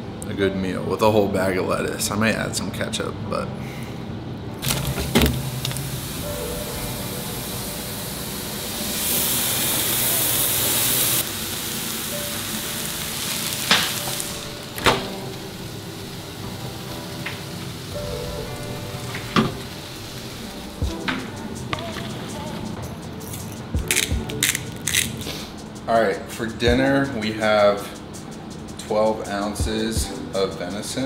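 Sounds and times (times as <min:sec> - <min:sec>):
quiet background music: 0:00.0 - 0:31.0
meat sizzling in a frying pan: 0:04.6 - 0:20.8.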